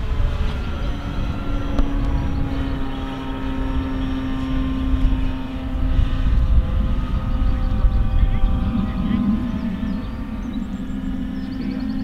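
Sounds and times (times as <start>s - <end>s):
low rumbling noise: 0.0s - 12.0s
model airplane motor drone: 0.0s - 12.0s.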